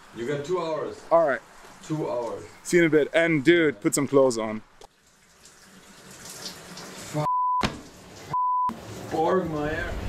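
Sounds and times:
shower water hissing: 0:05.3 - 0:10.0
censor bleeps: 0:07.2 - 0:07.7, 0:08.3 - 0:08.7.

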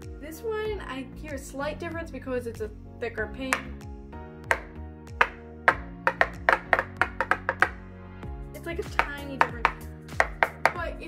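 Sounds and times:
background music: 0:00.0 - 0:11.0
metal pins tapped: 0:03.5 - 0:03.8, 0:04.5 - 0:07.8, 0:08.9 - 0:10.8.

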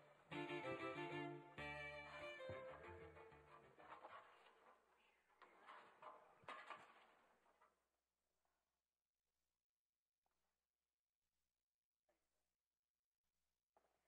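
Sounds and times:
concert band wind instruments: 0:00.3 - 0:03.1.

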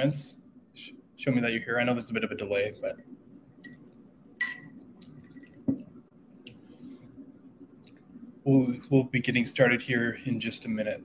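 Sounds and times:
ceiling fan hum: 0:00.0 - 0:11.0.

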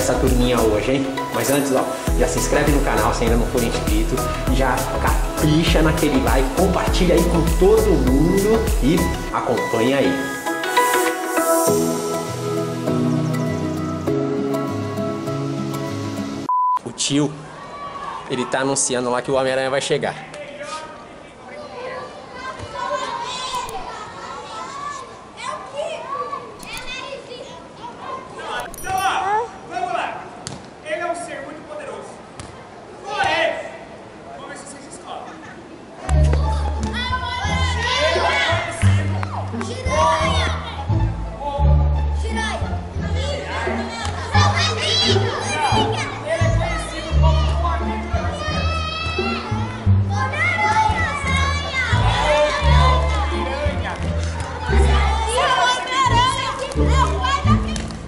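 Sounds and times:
music over loudspeaker: 0:00.0 - 0:16.4
children shouting and chattering: 0:17.4 - 0:18.9, 0:20.1 - 0:30.4, 0:32.0 - 0:58.0.

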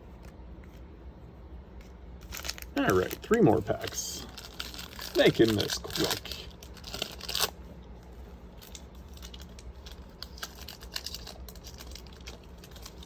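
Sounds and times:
foil wrapper crinkling and tearing: 0:02.2 - 0:07.6, 0:08.5 - 0:13.0.

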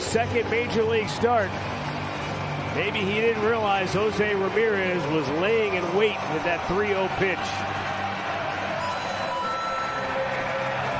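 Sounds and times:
crowd cheering: 0:00.0 - 0:10.9.

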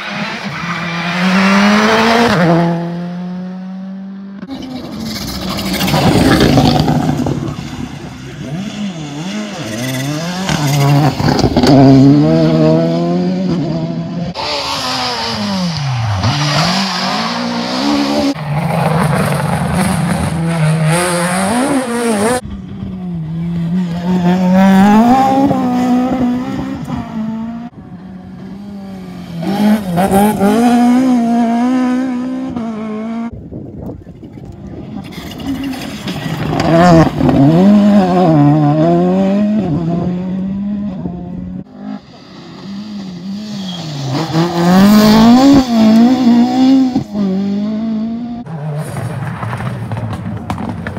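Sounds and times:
rally car engines revving: 0:00.0 - 0:50.9.

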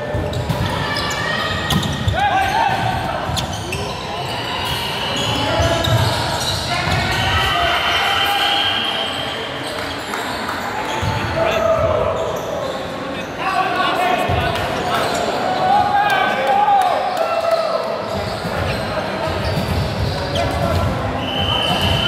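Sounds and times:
players calling and shouting: 0:00.0 - 0:22.0.

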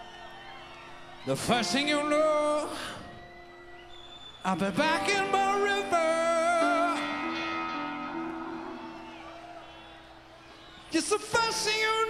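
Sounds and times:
person singing: 0:04.5 - 0:07.8
rock band music: 0:04.5 - 0:09.6.

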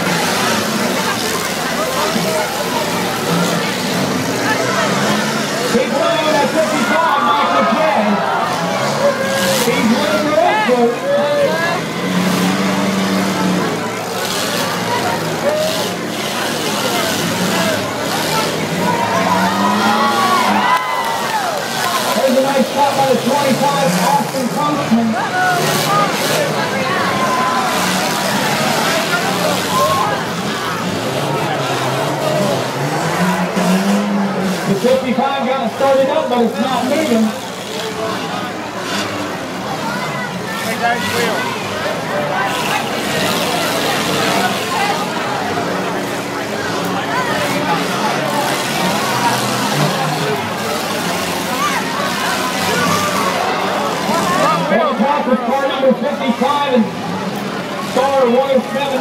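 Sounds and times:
car engines revving: 0:00.0 - 0:59.0
cars crashing together: 0:00.0 - 0:59.0
crowd chatter: 0:00.0 - 0:59.0.

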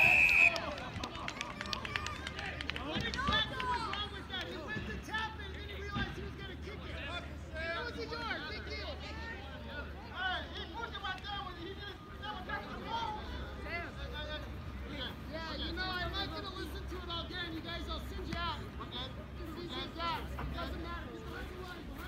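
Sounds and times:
babble of many voices: 0:00.7 - 0:22.0.

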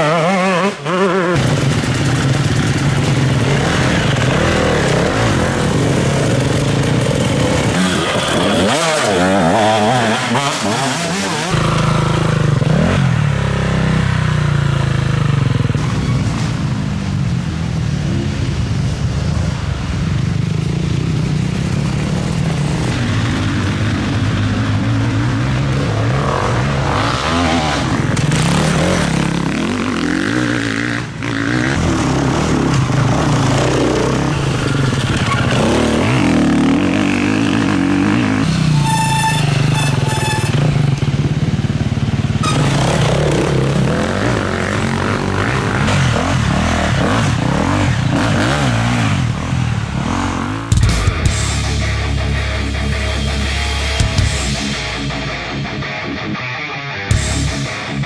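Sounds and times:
dirt bike engines revving: 0:00.0 - 0:58.0
heavy metal guitar music: 0:50.4 - 0:58.0.

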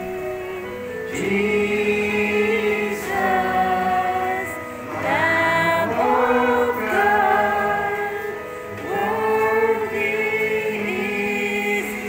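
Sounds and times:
group singing a gospel hymn: 0:00.0 - 0:12.0.

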